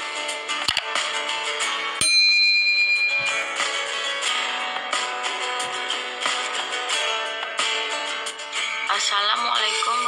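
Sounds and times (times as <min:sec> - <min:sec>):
guitar background music: 0:00.0 - 0:10.0
bell chime: 0:02.0 - 0:04.8.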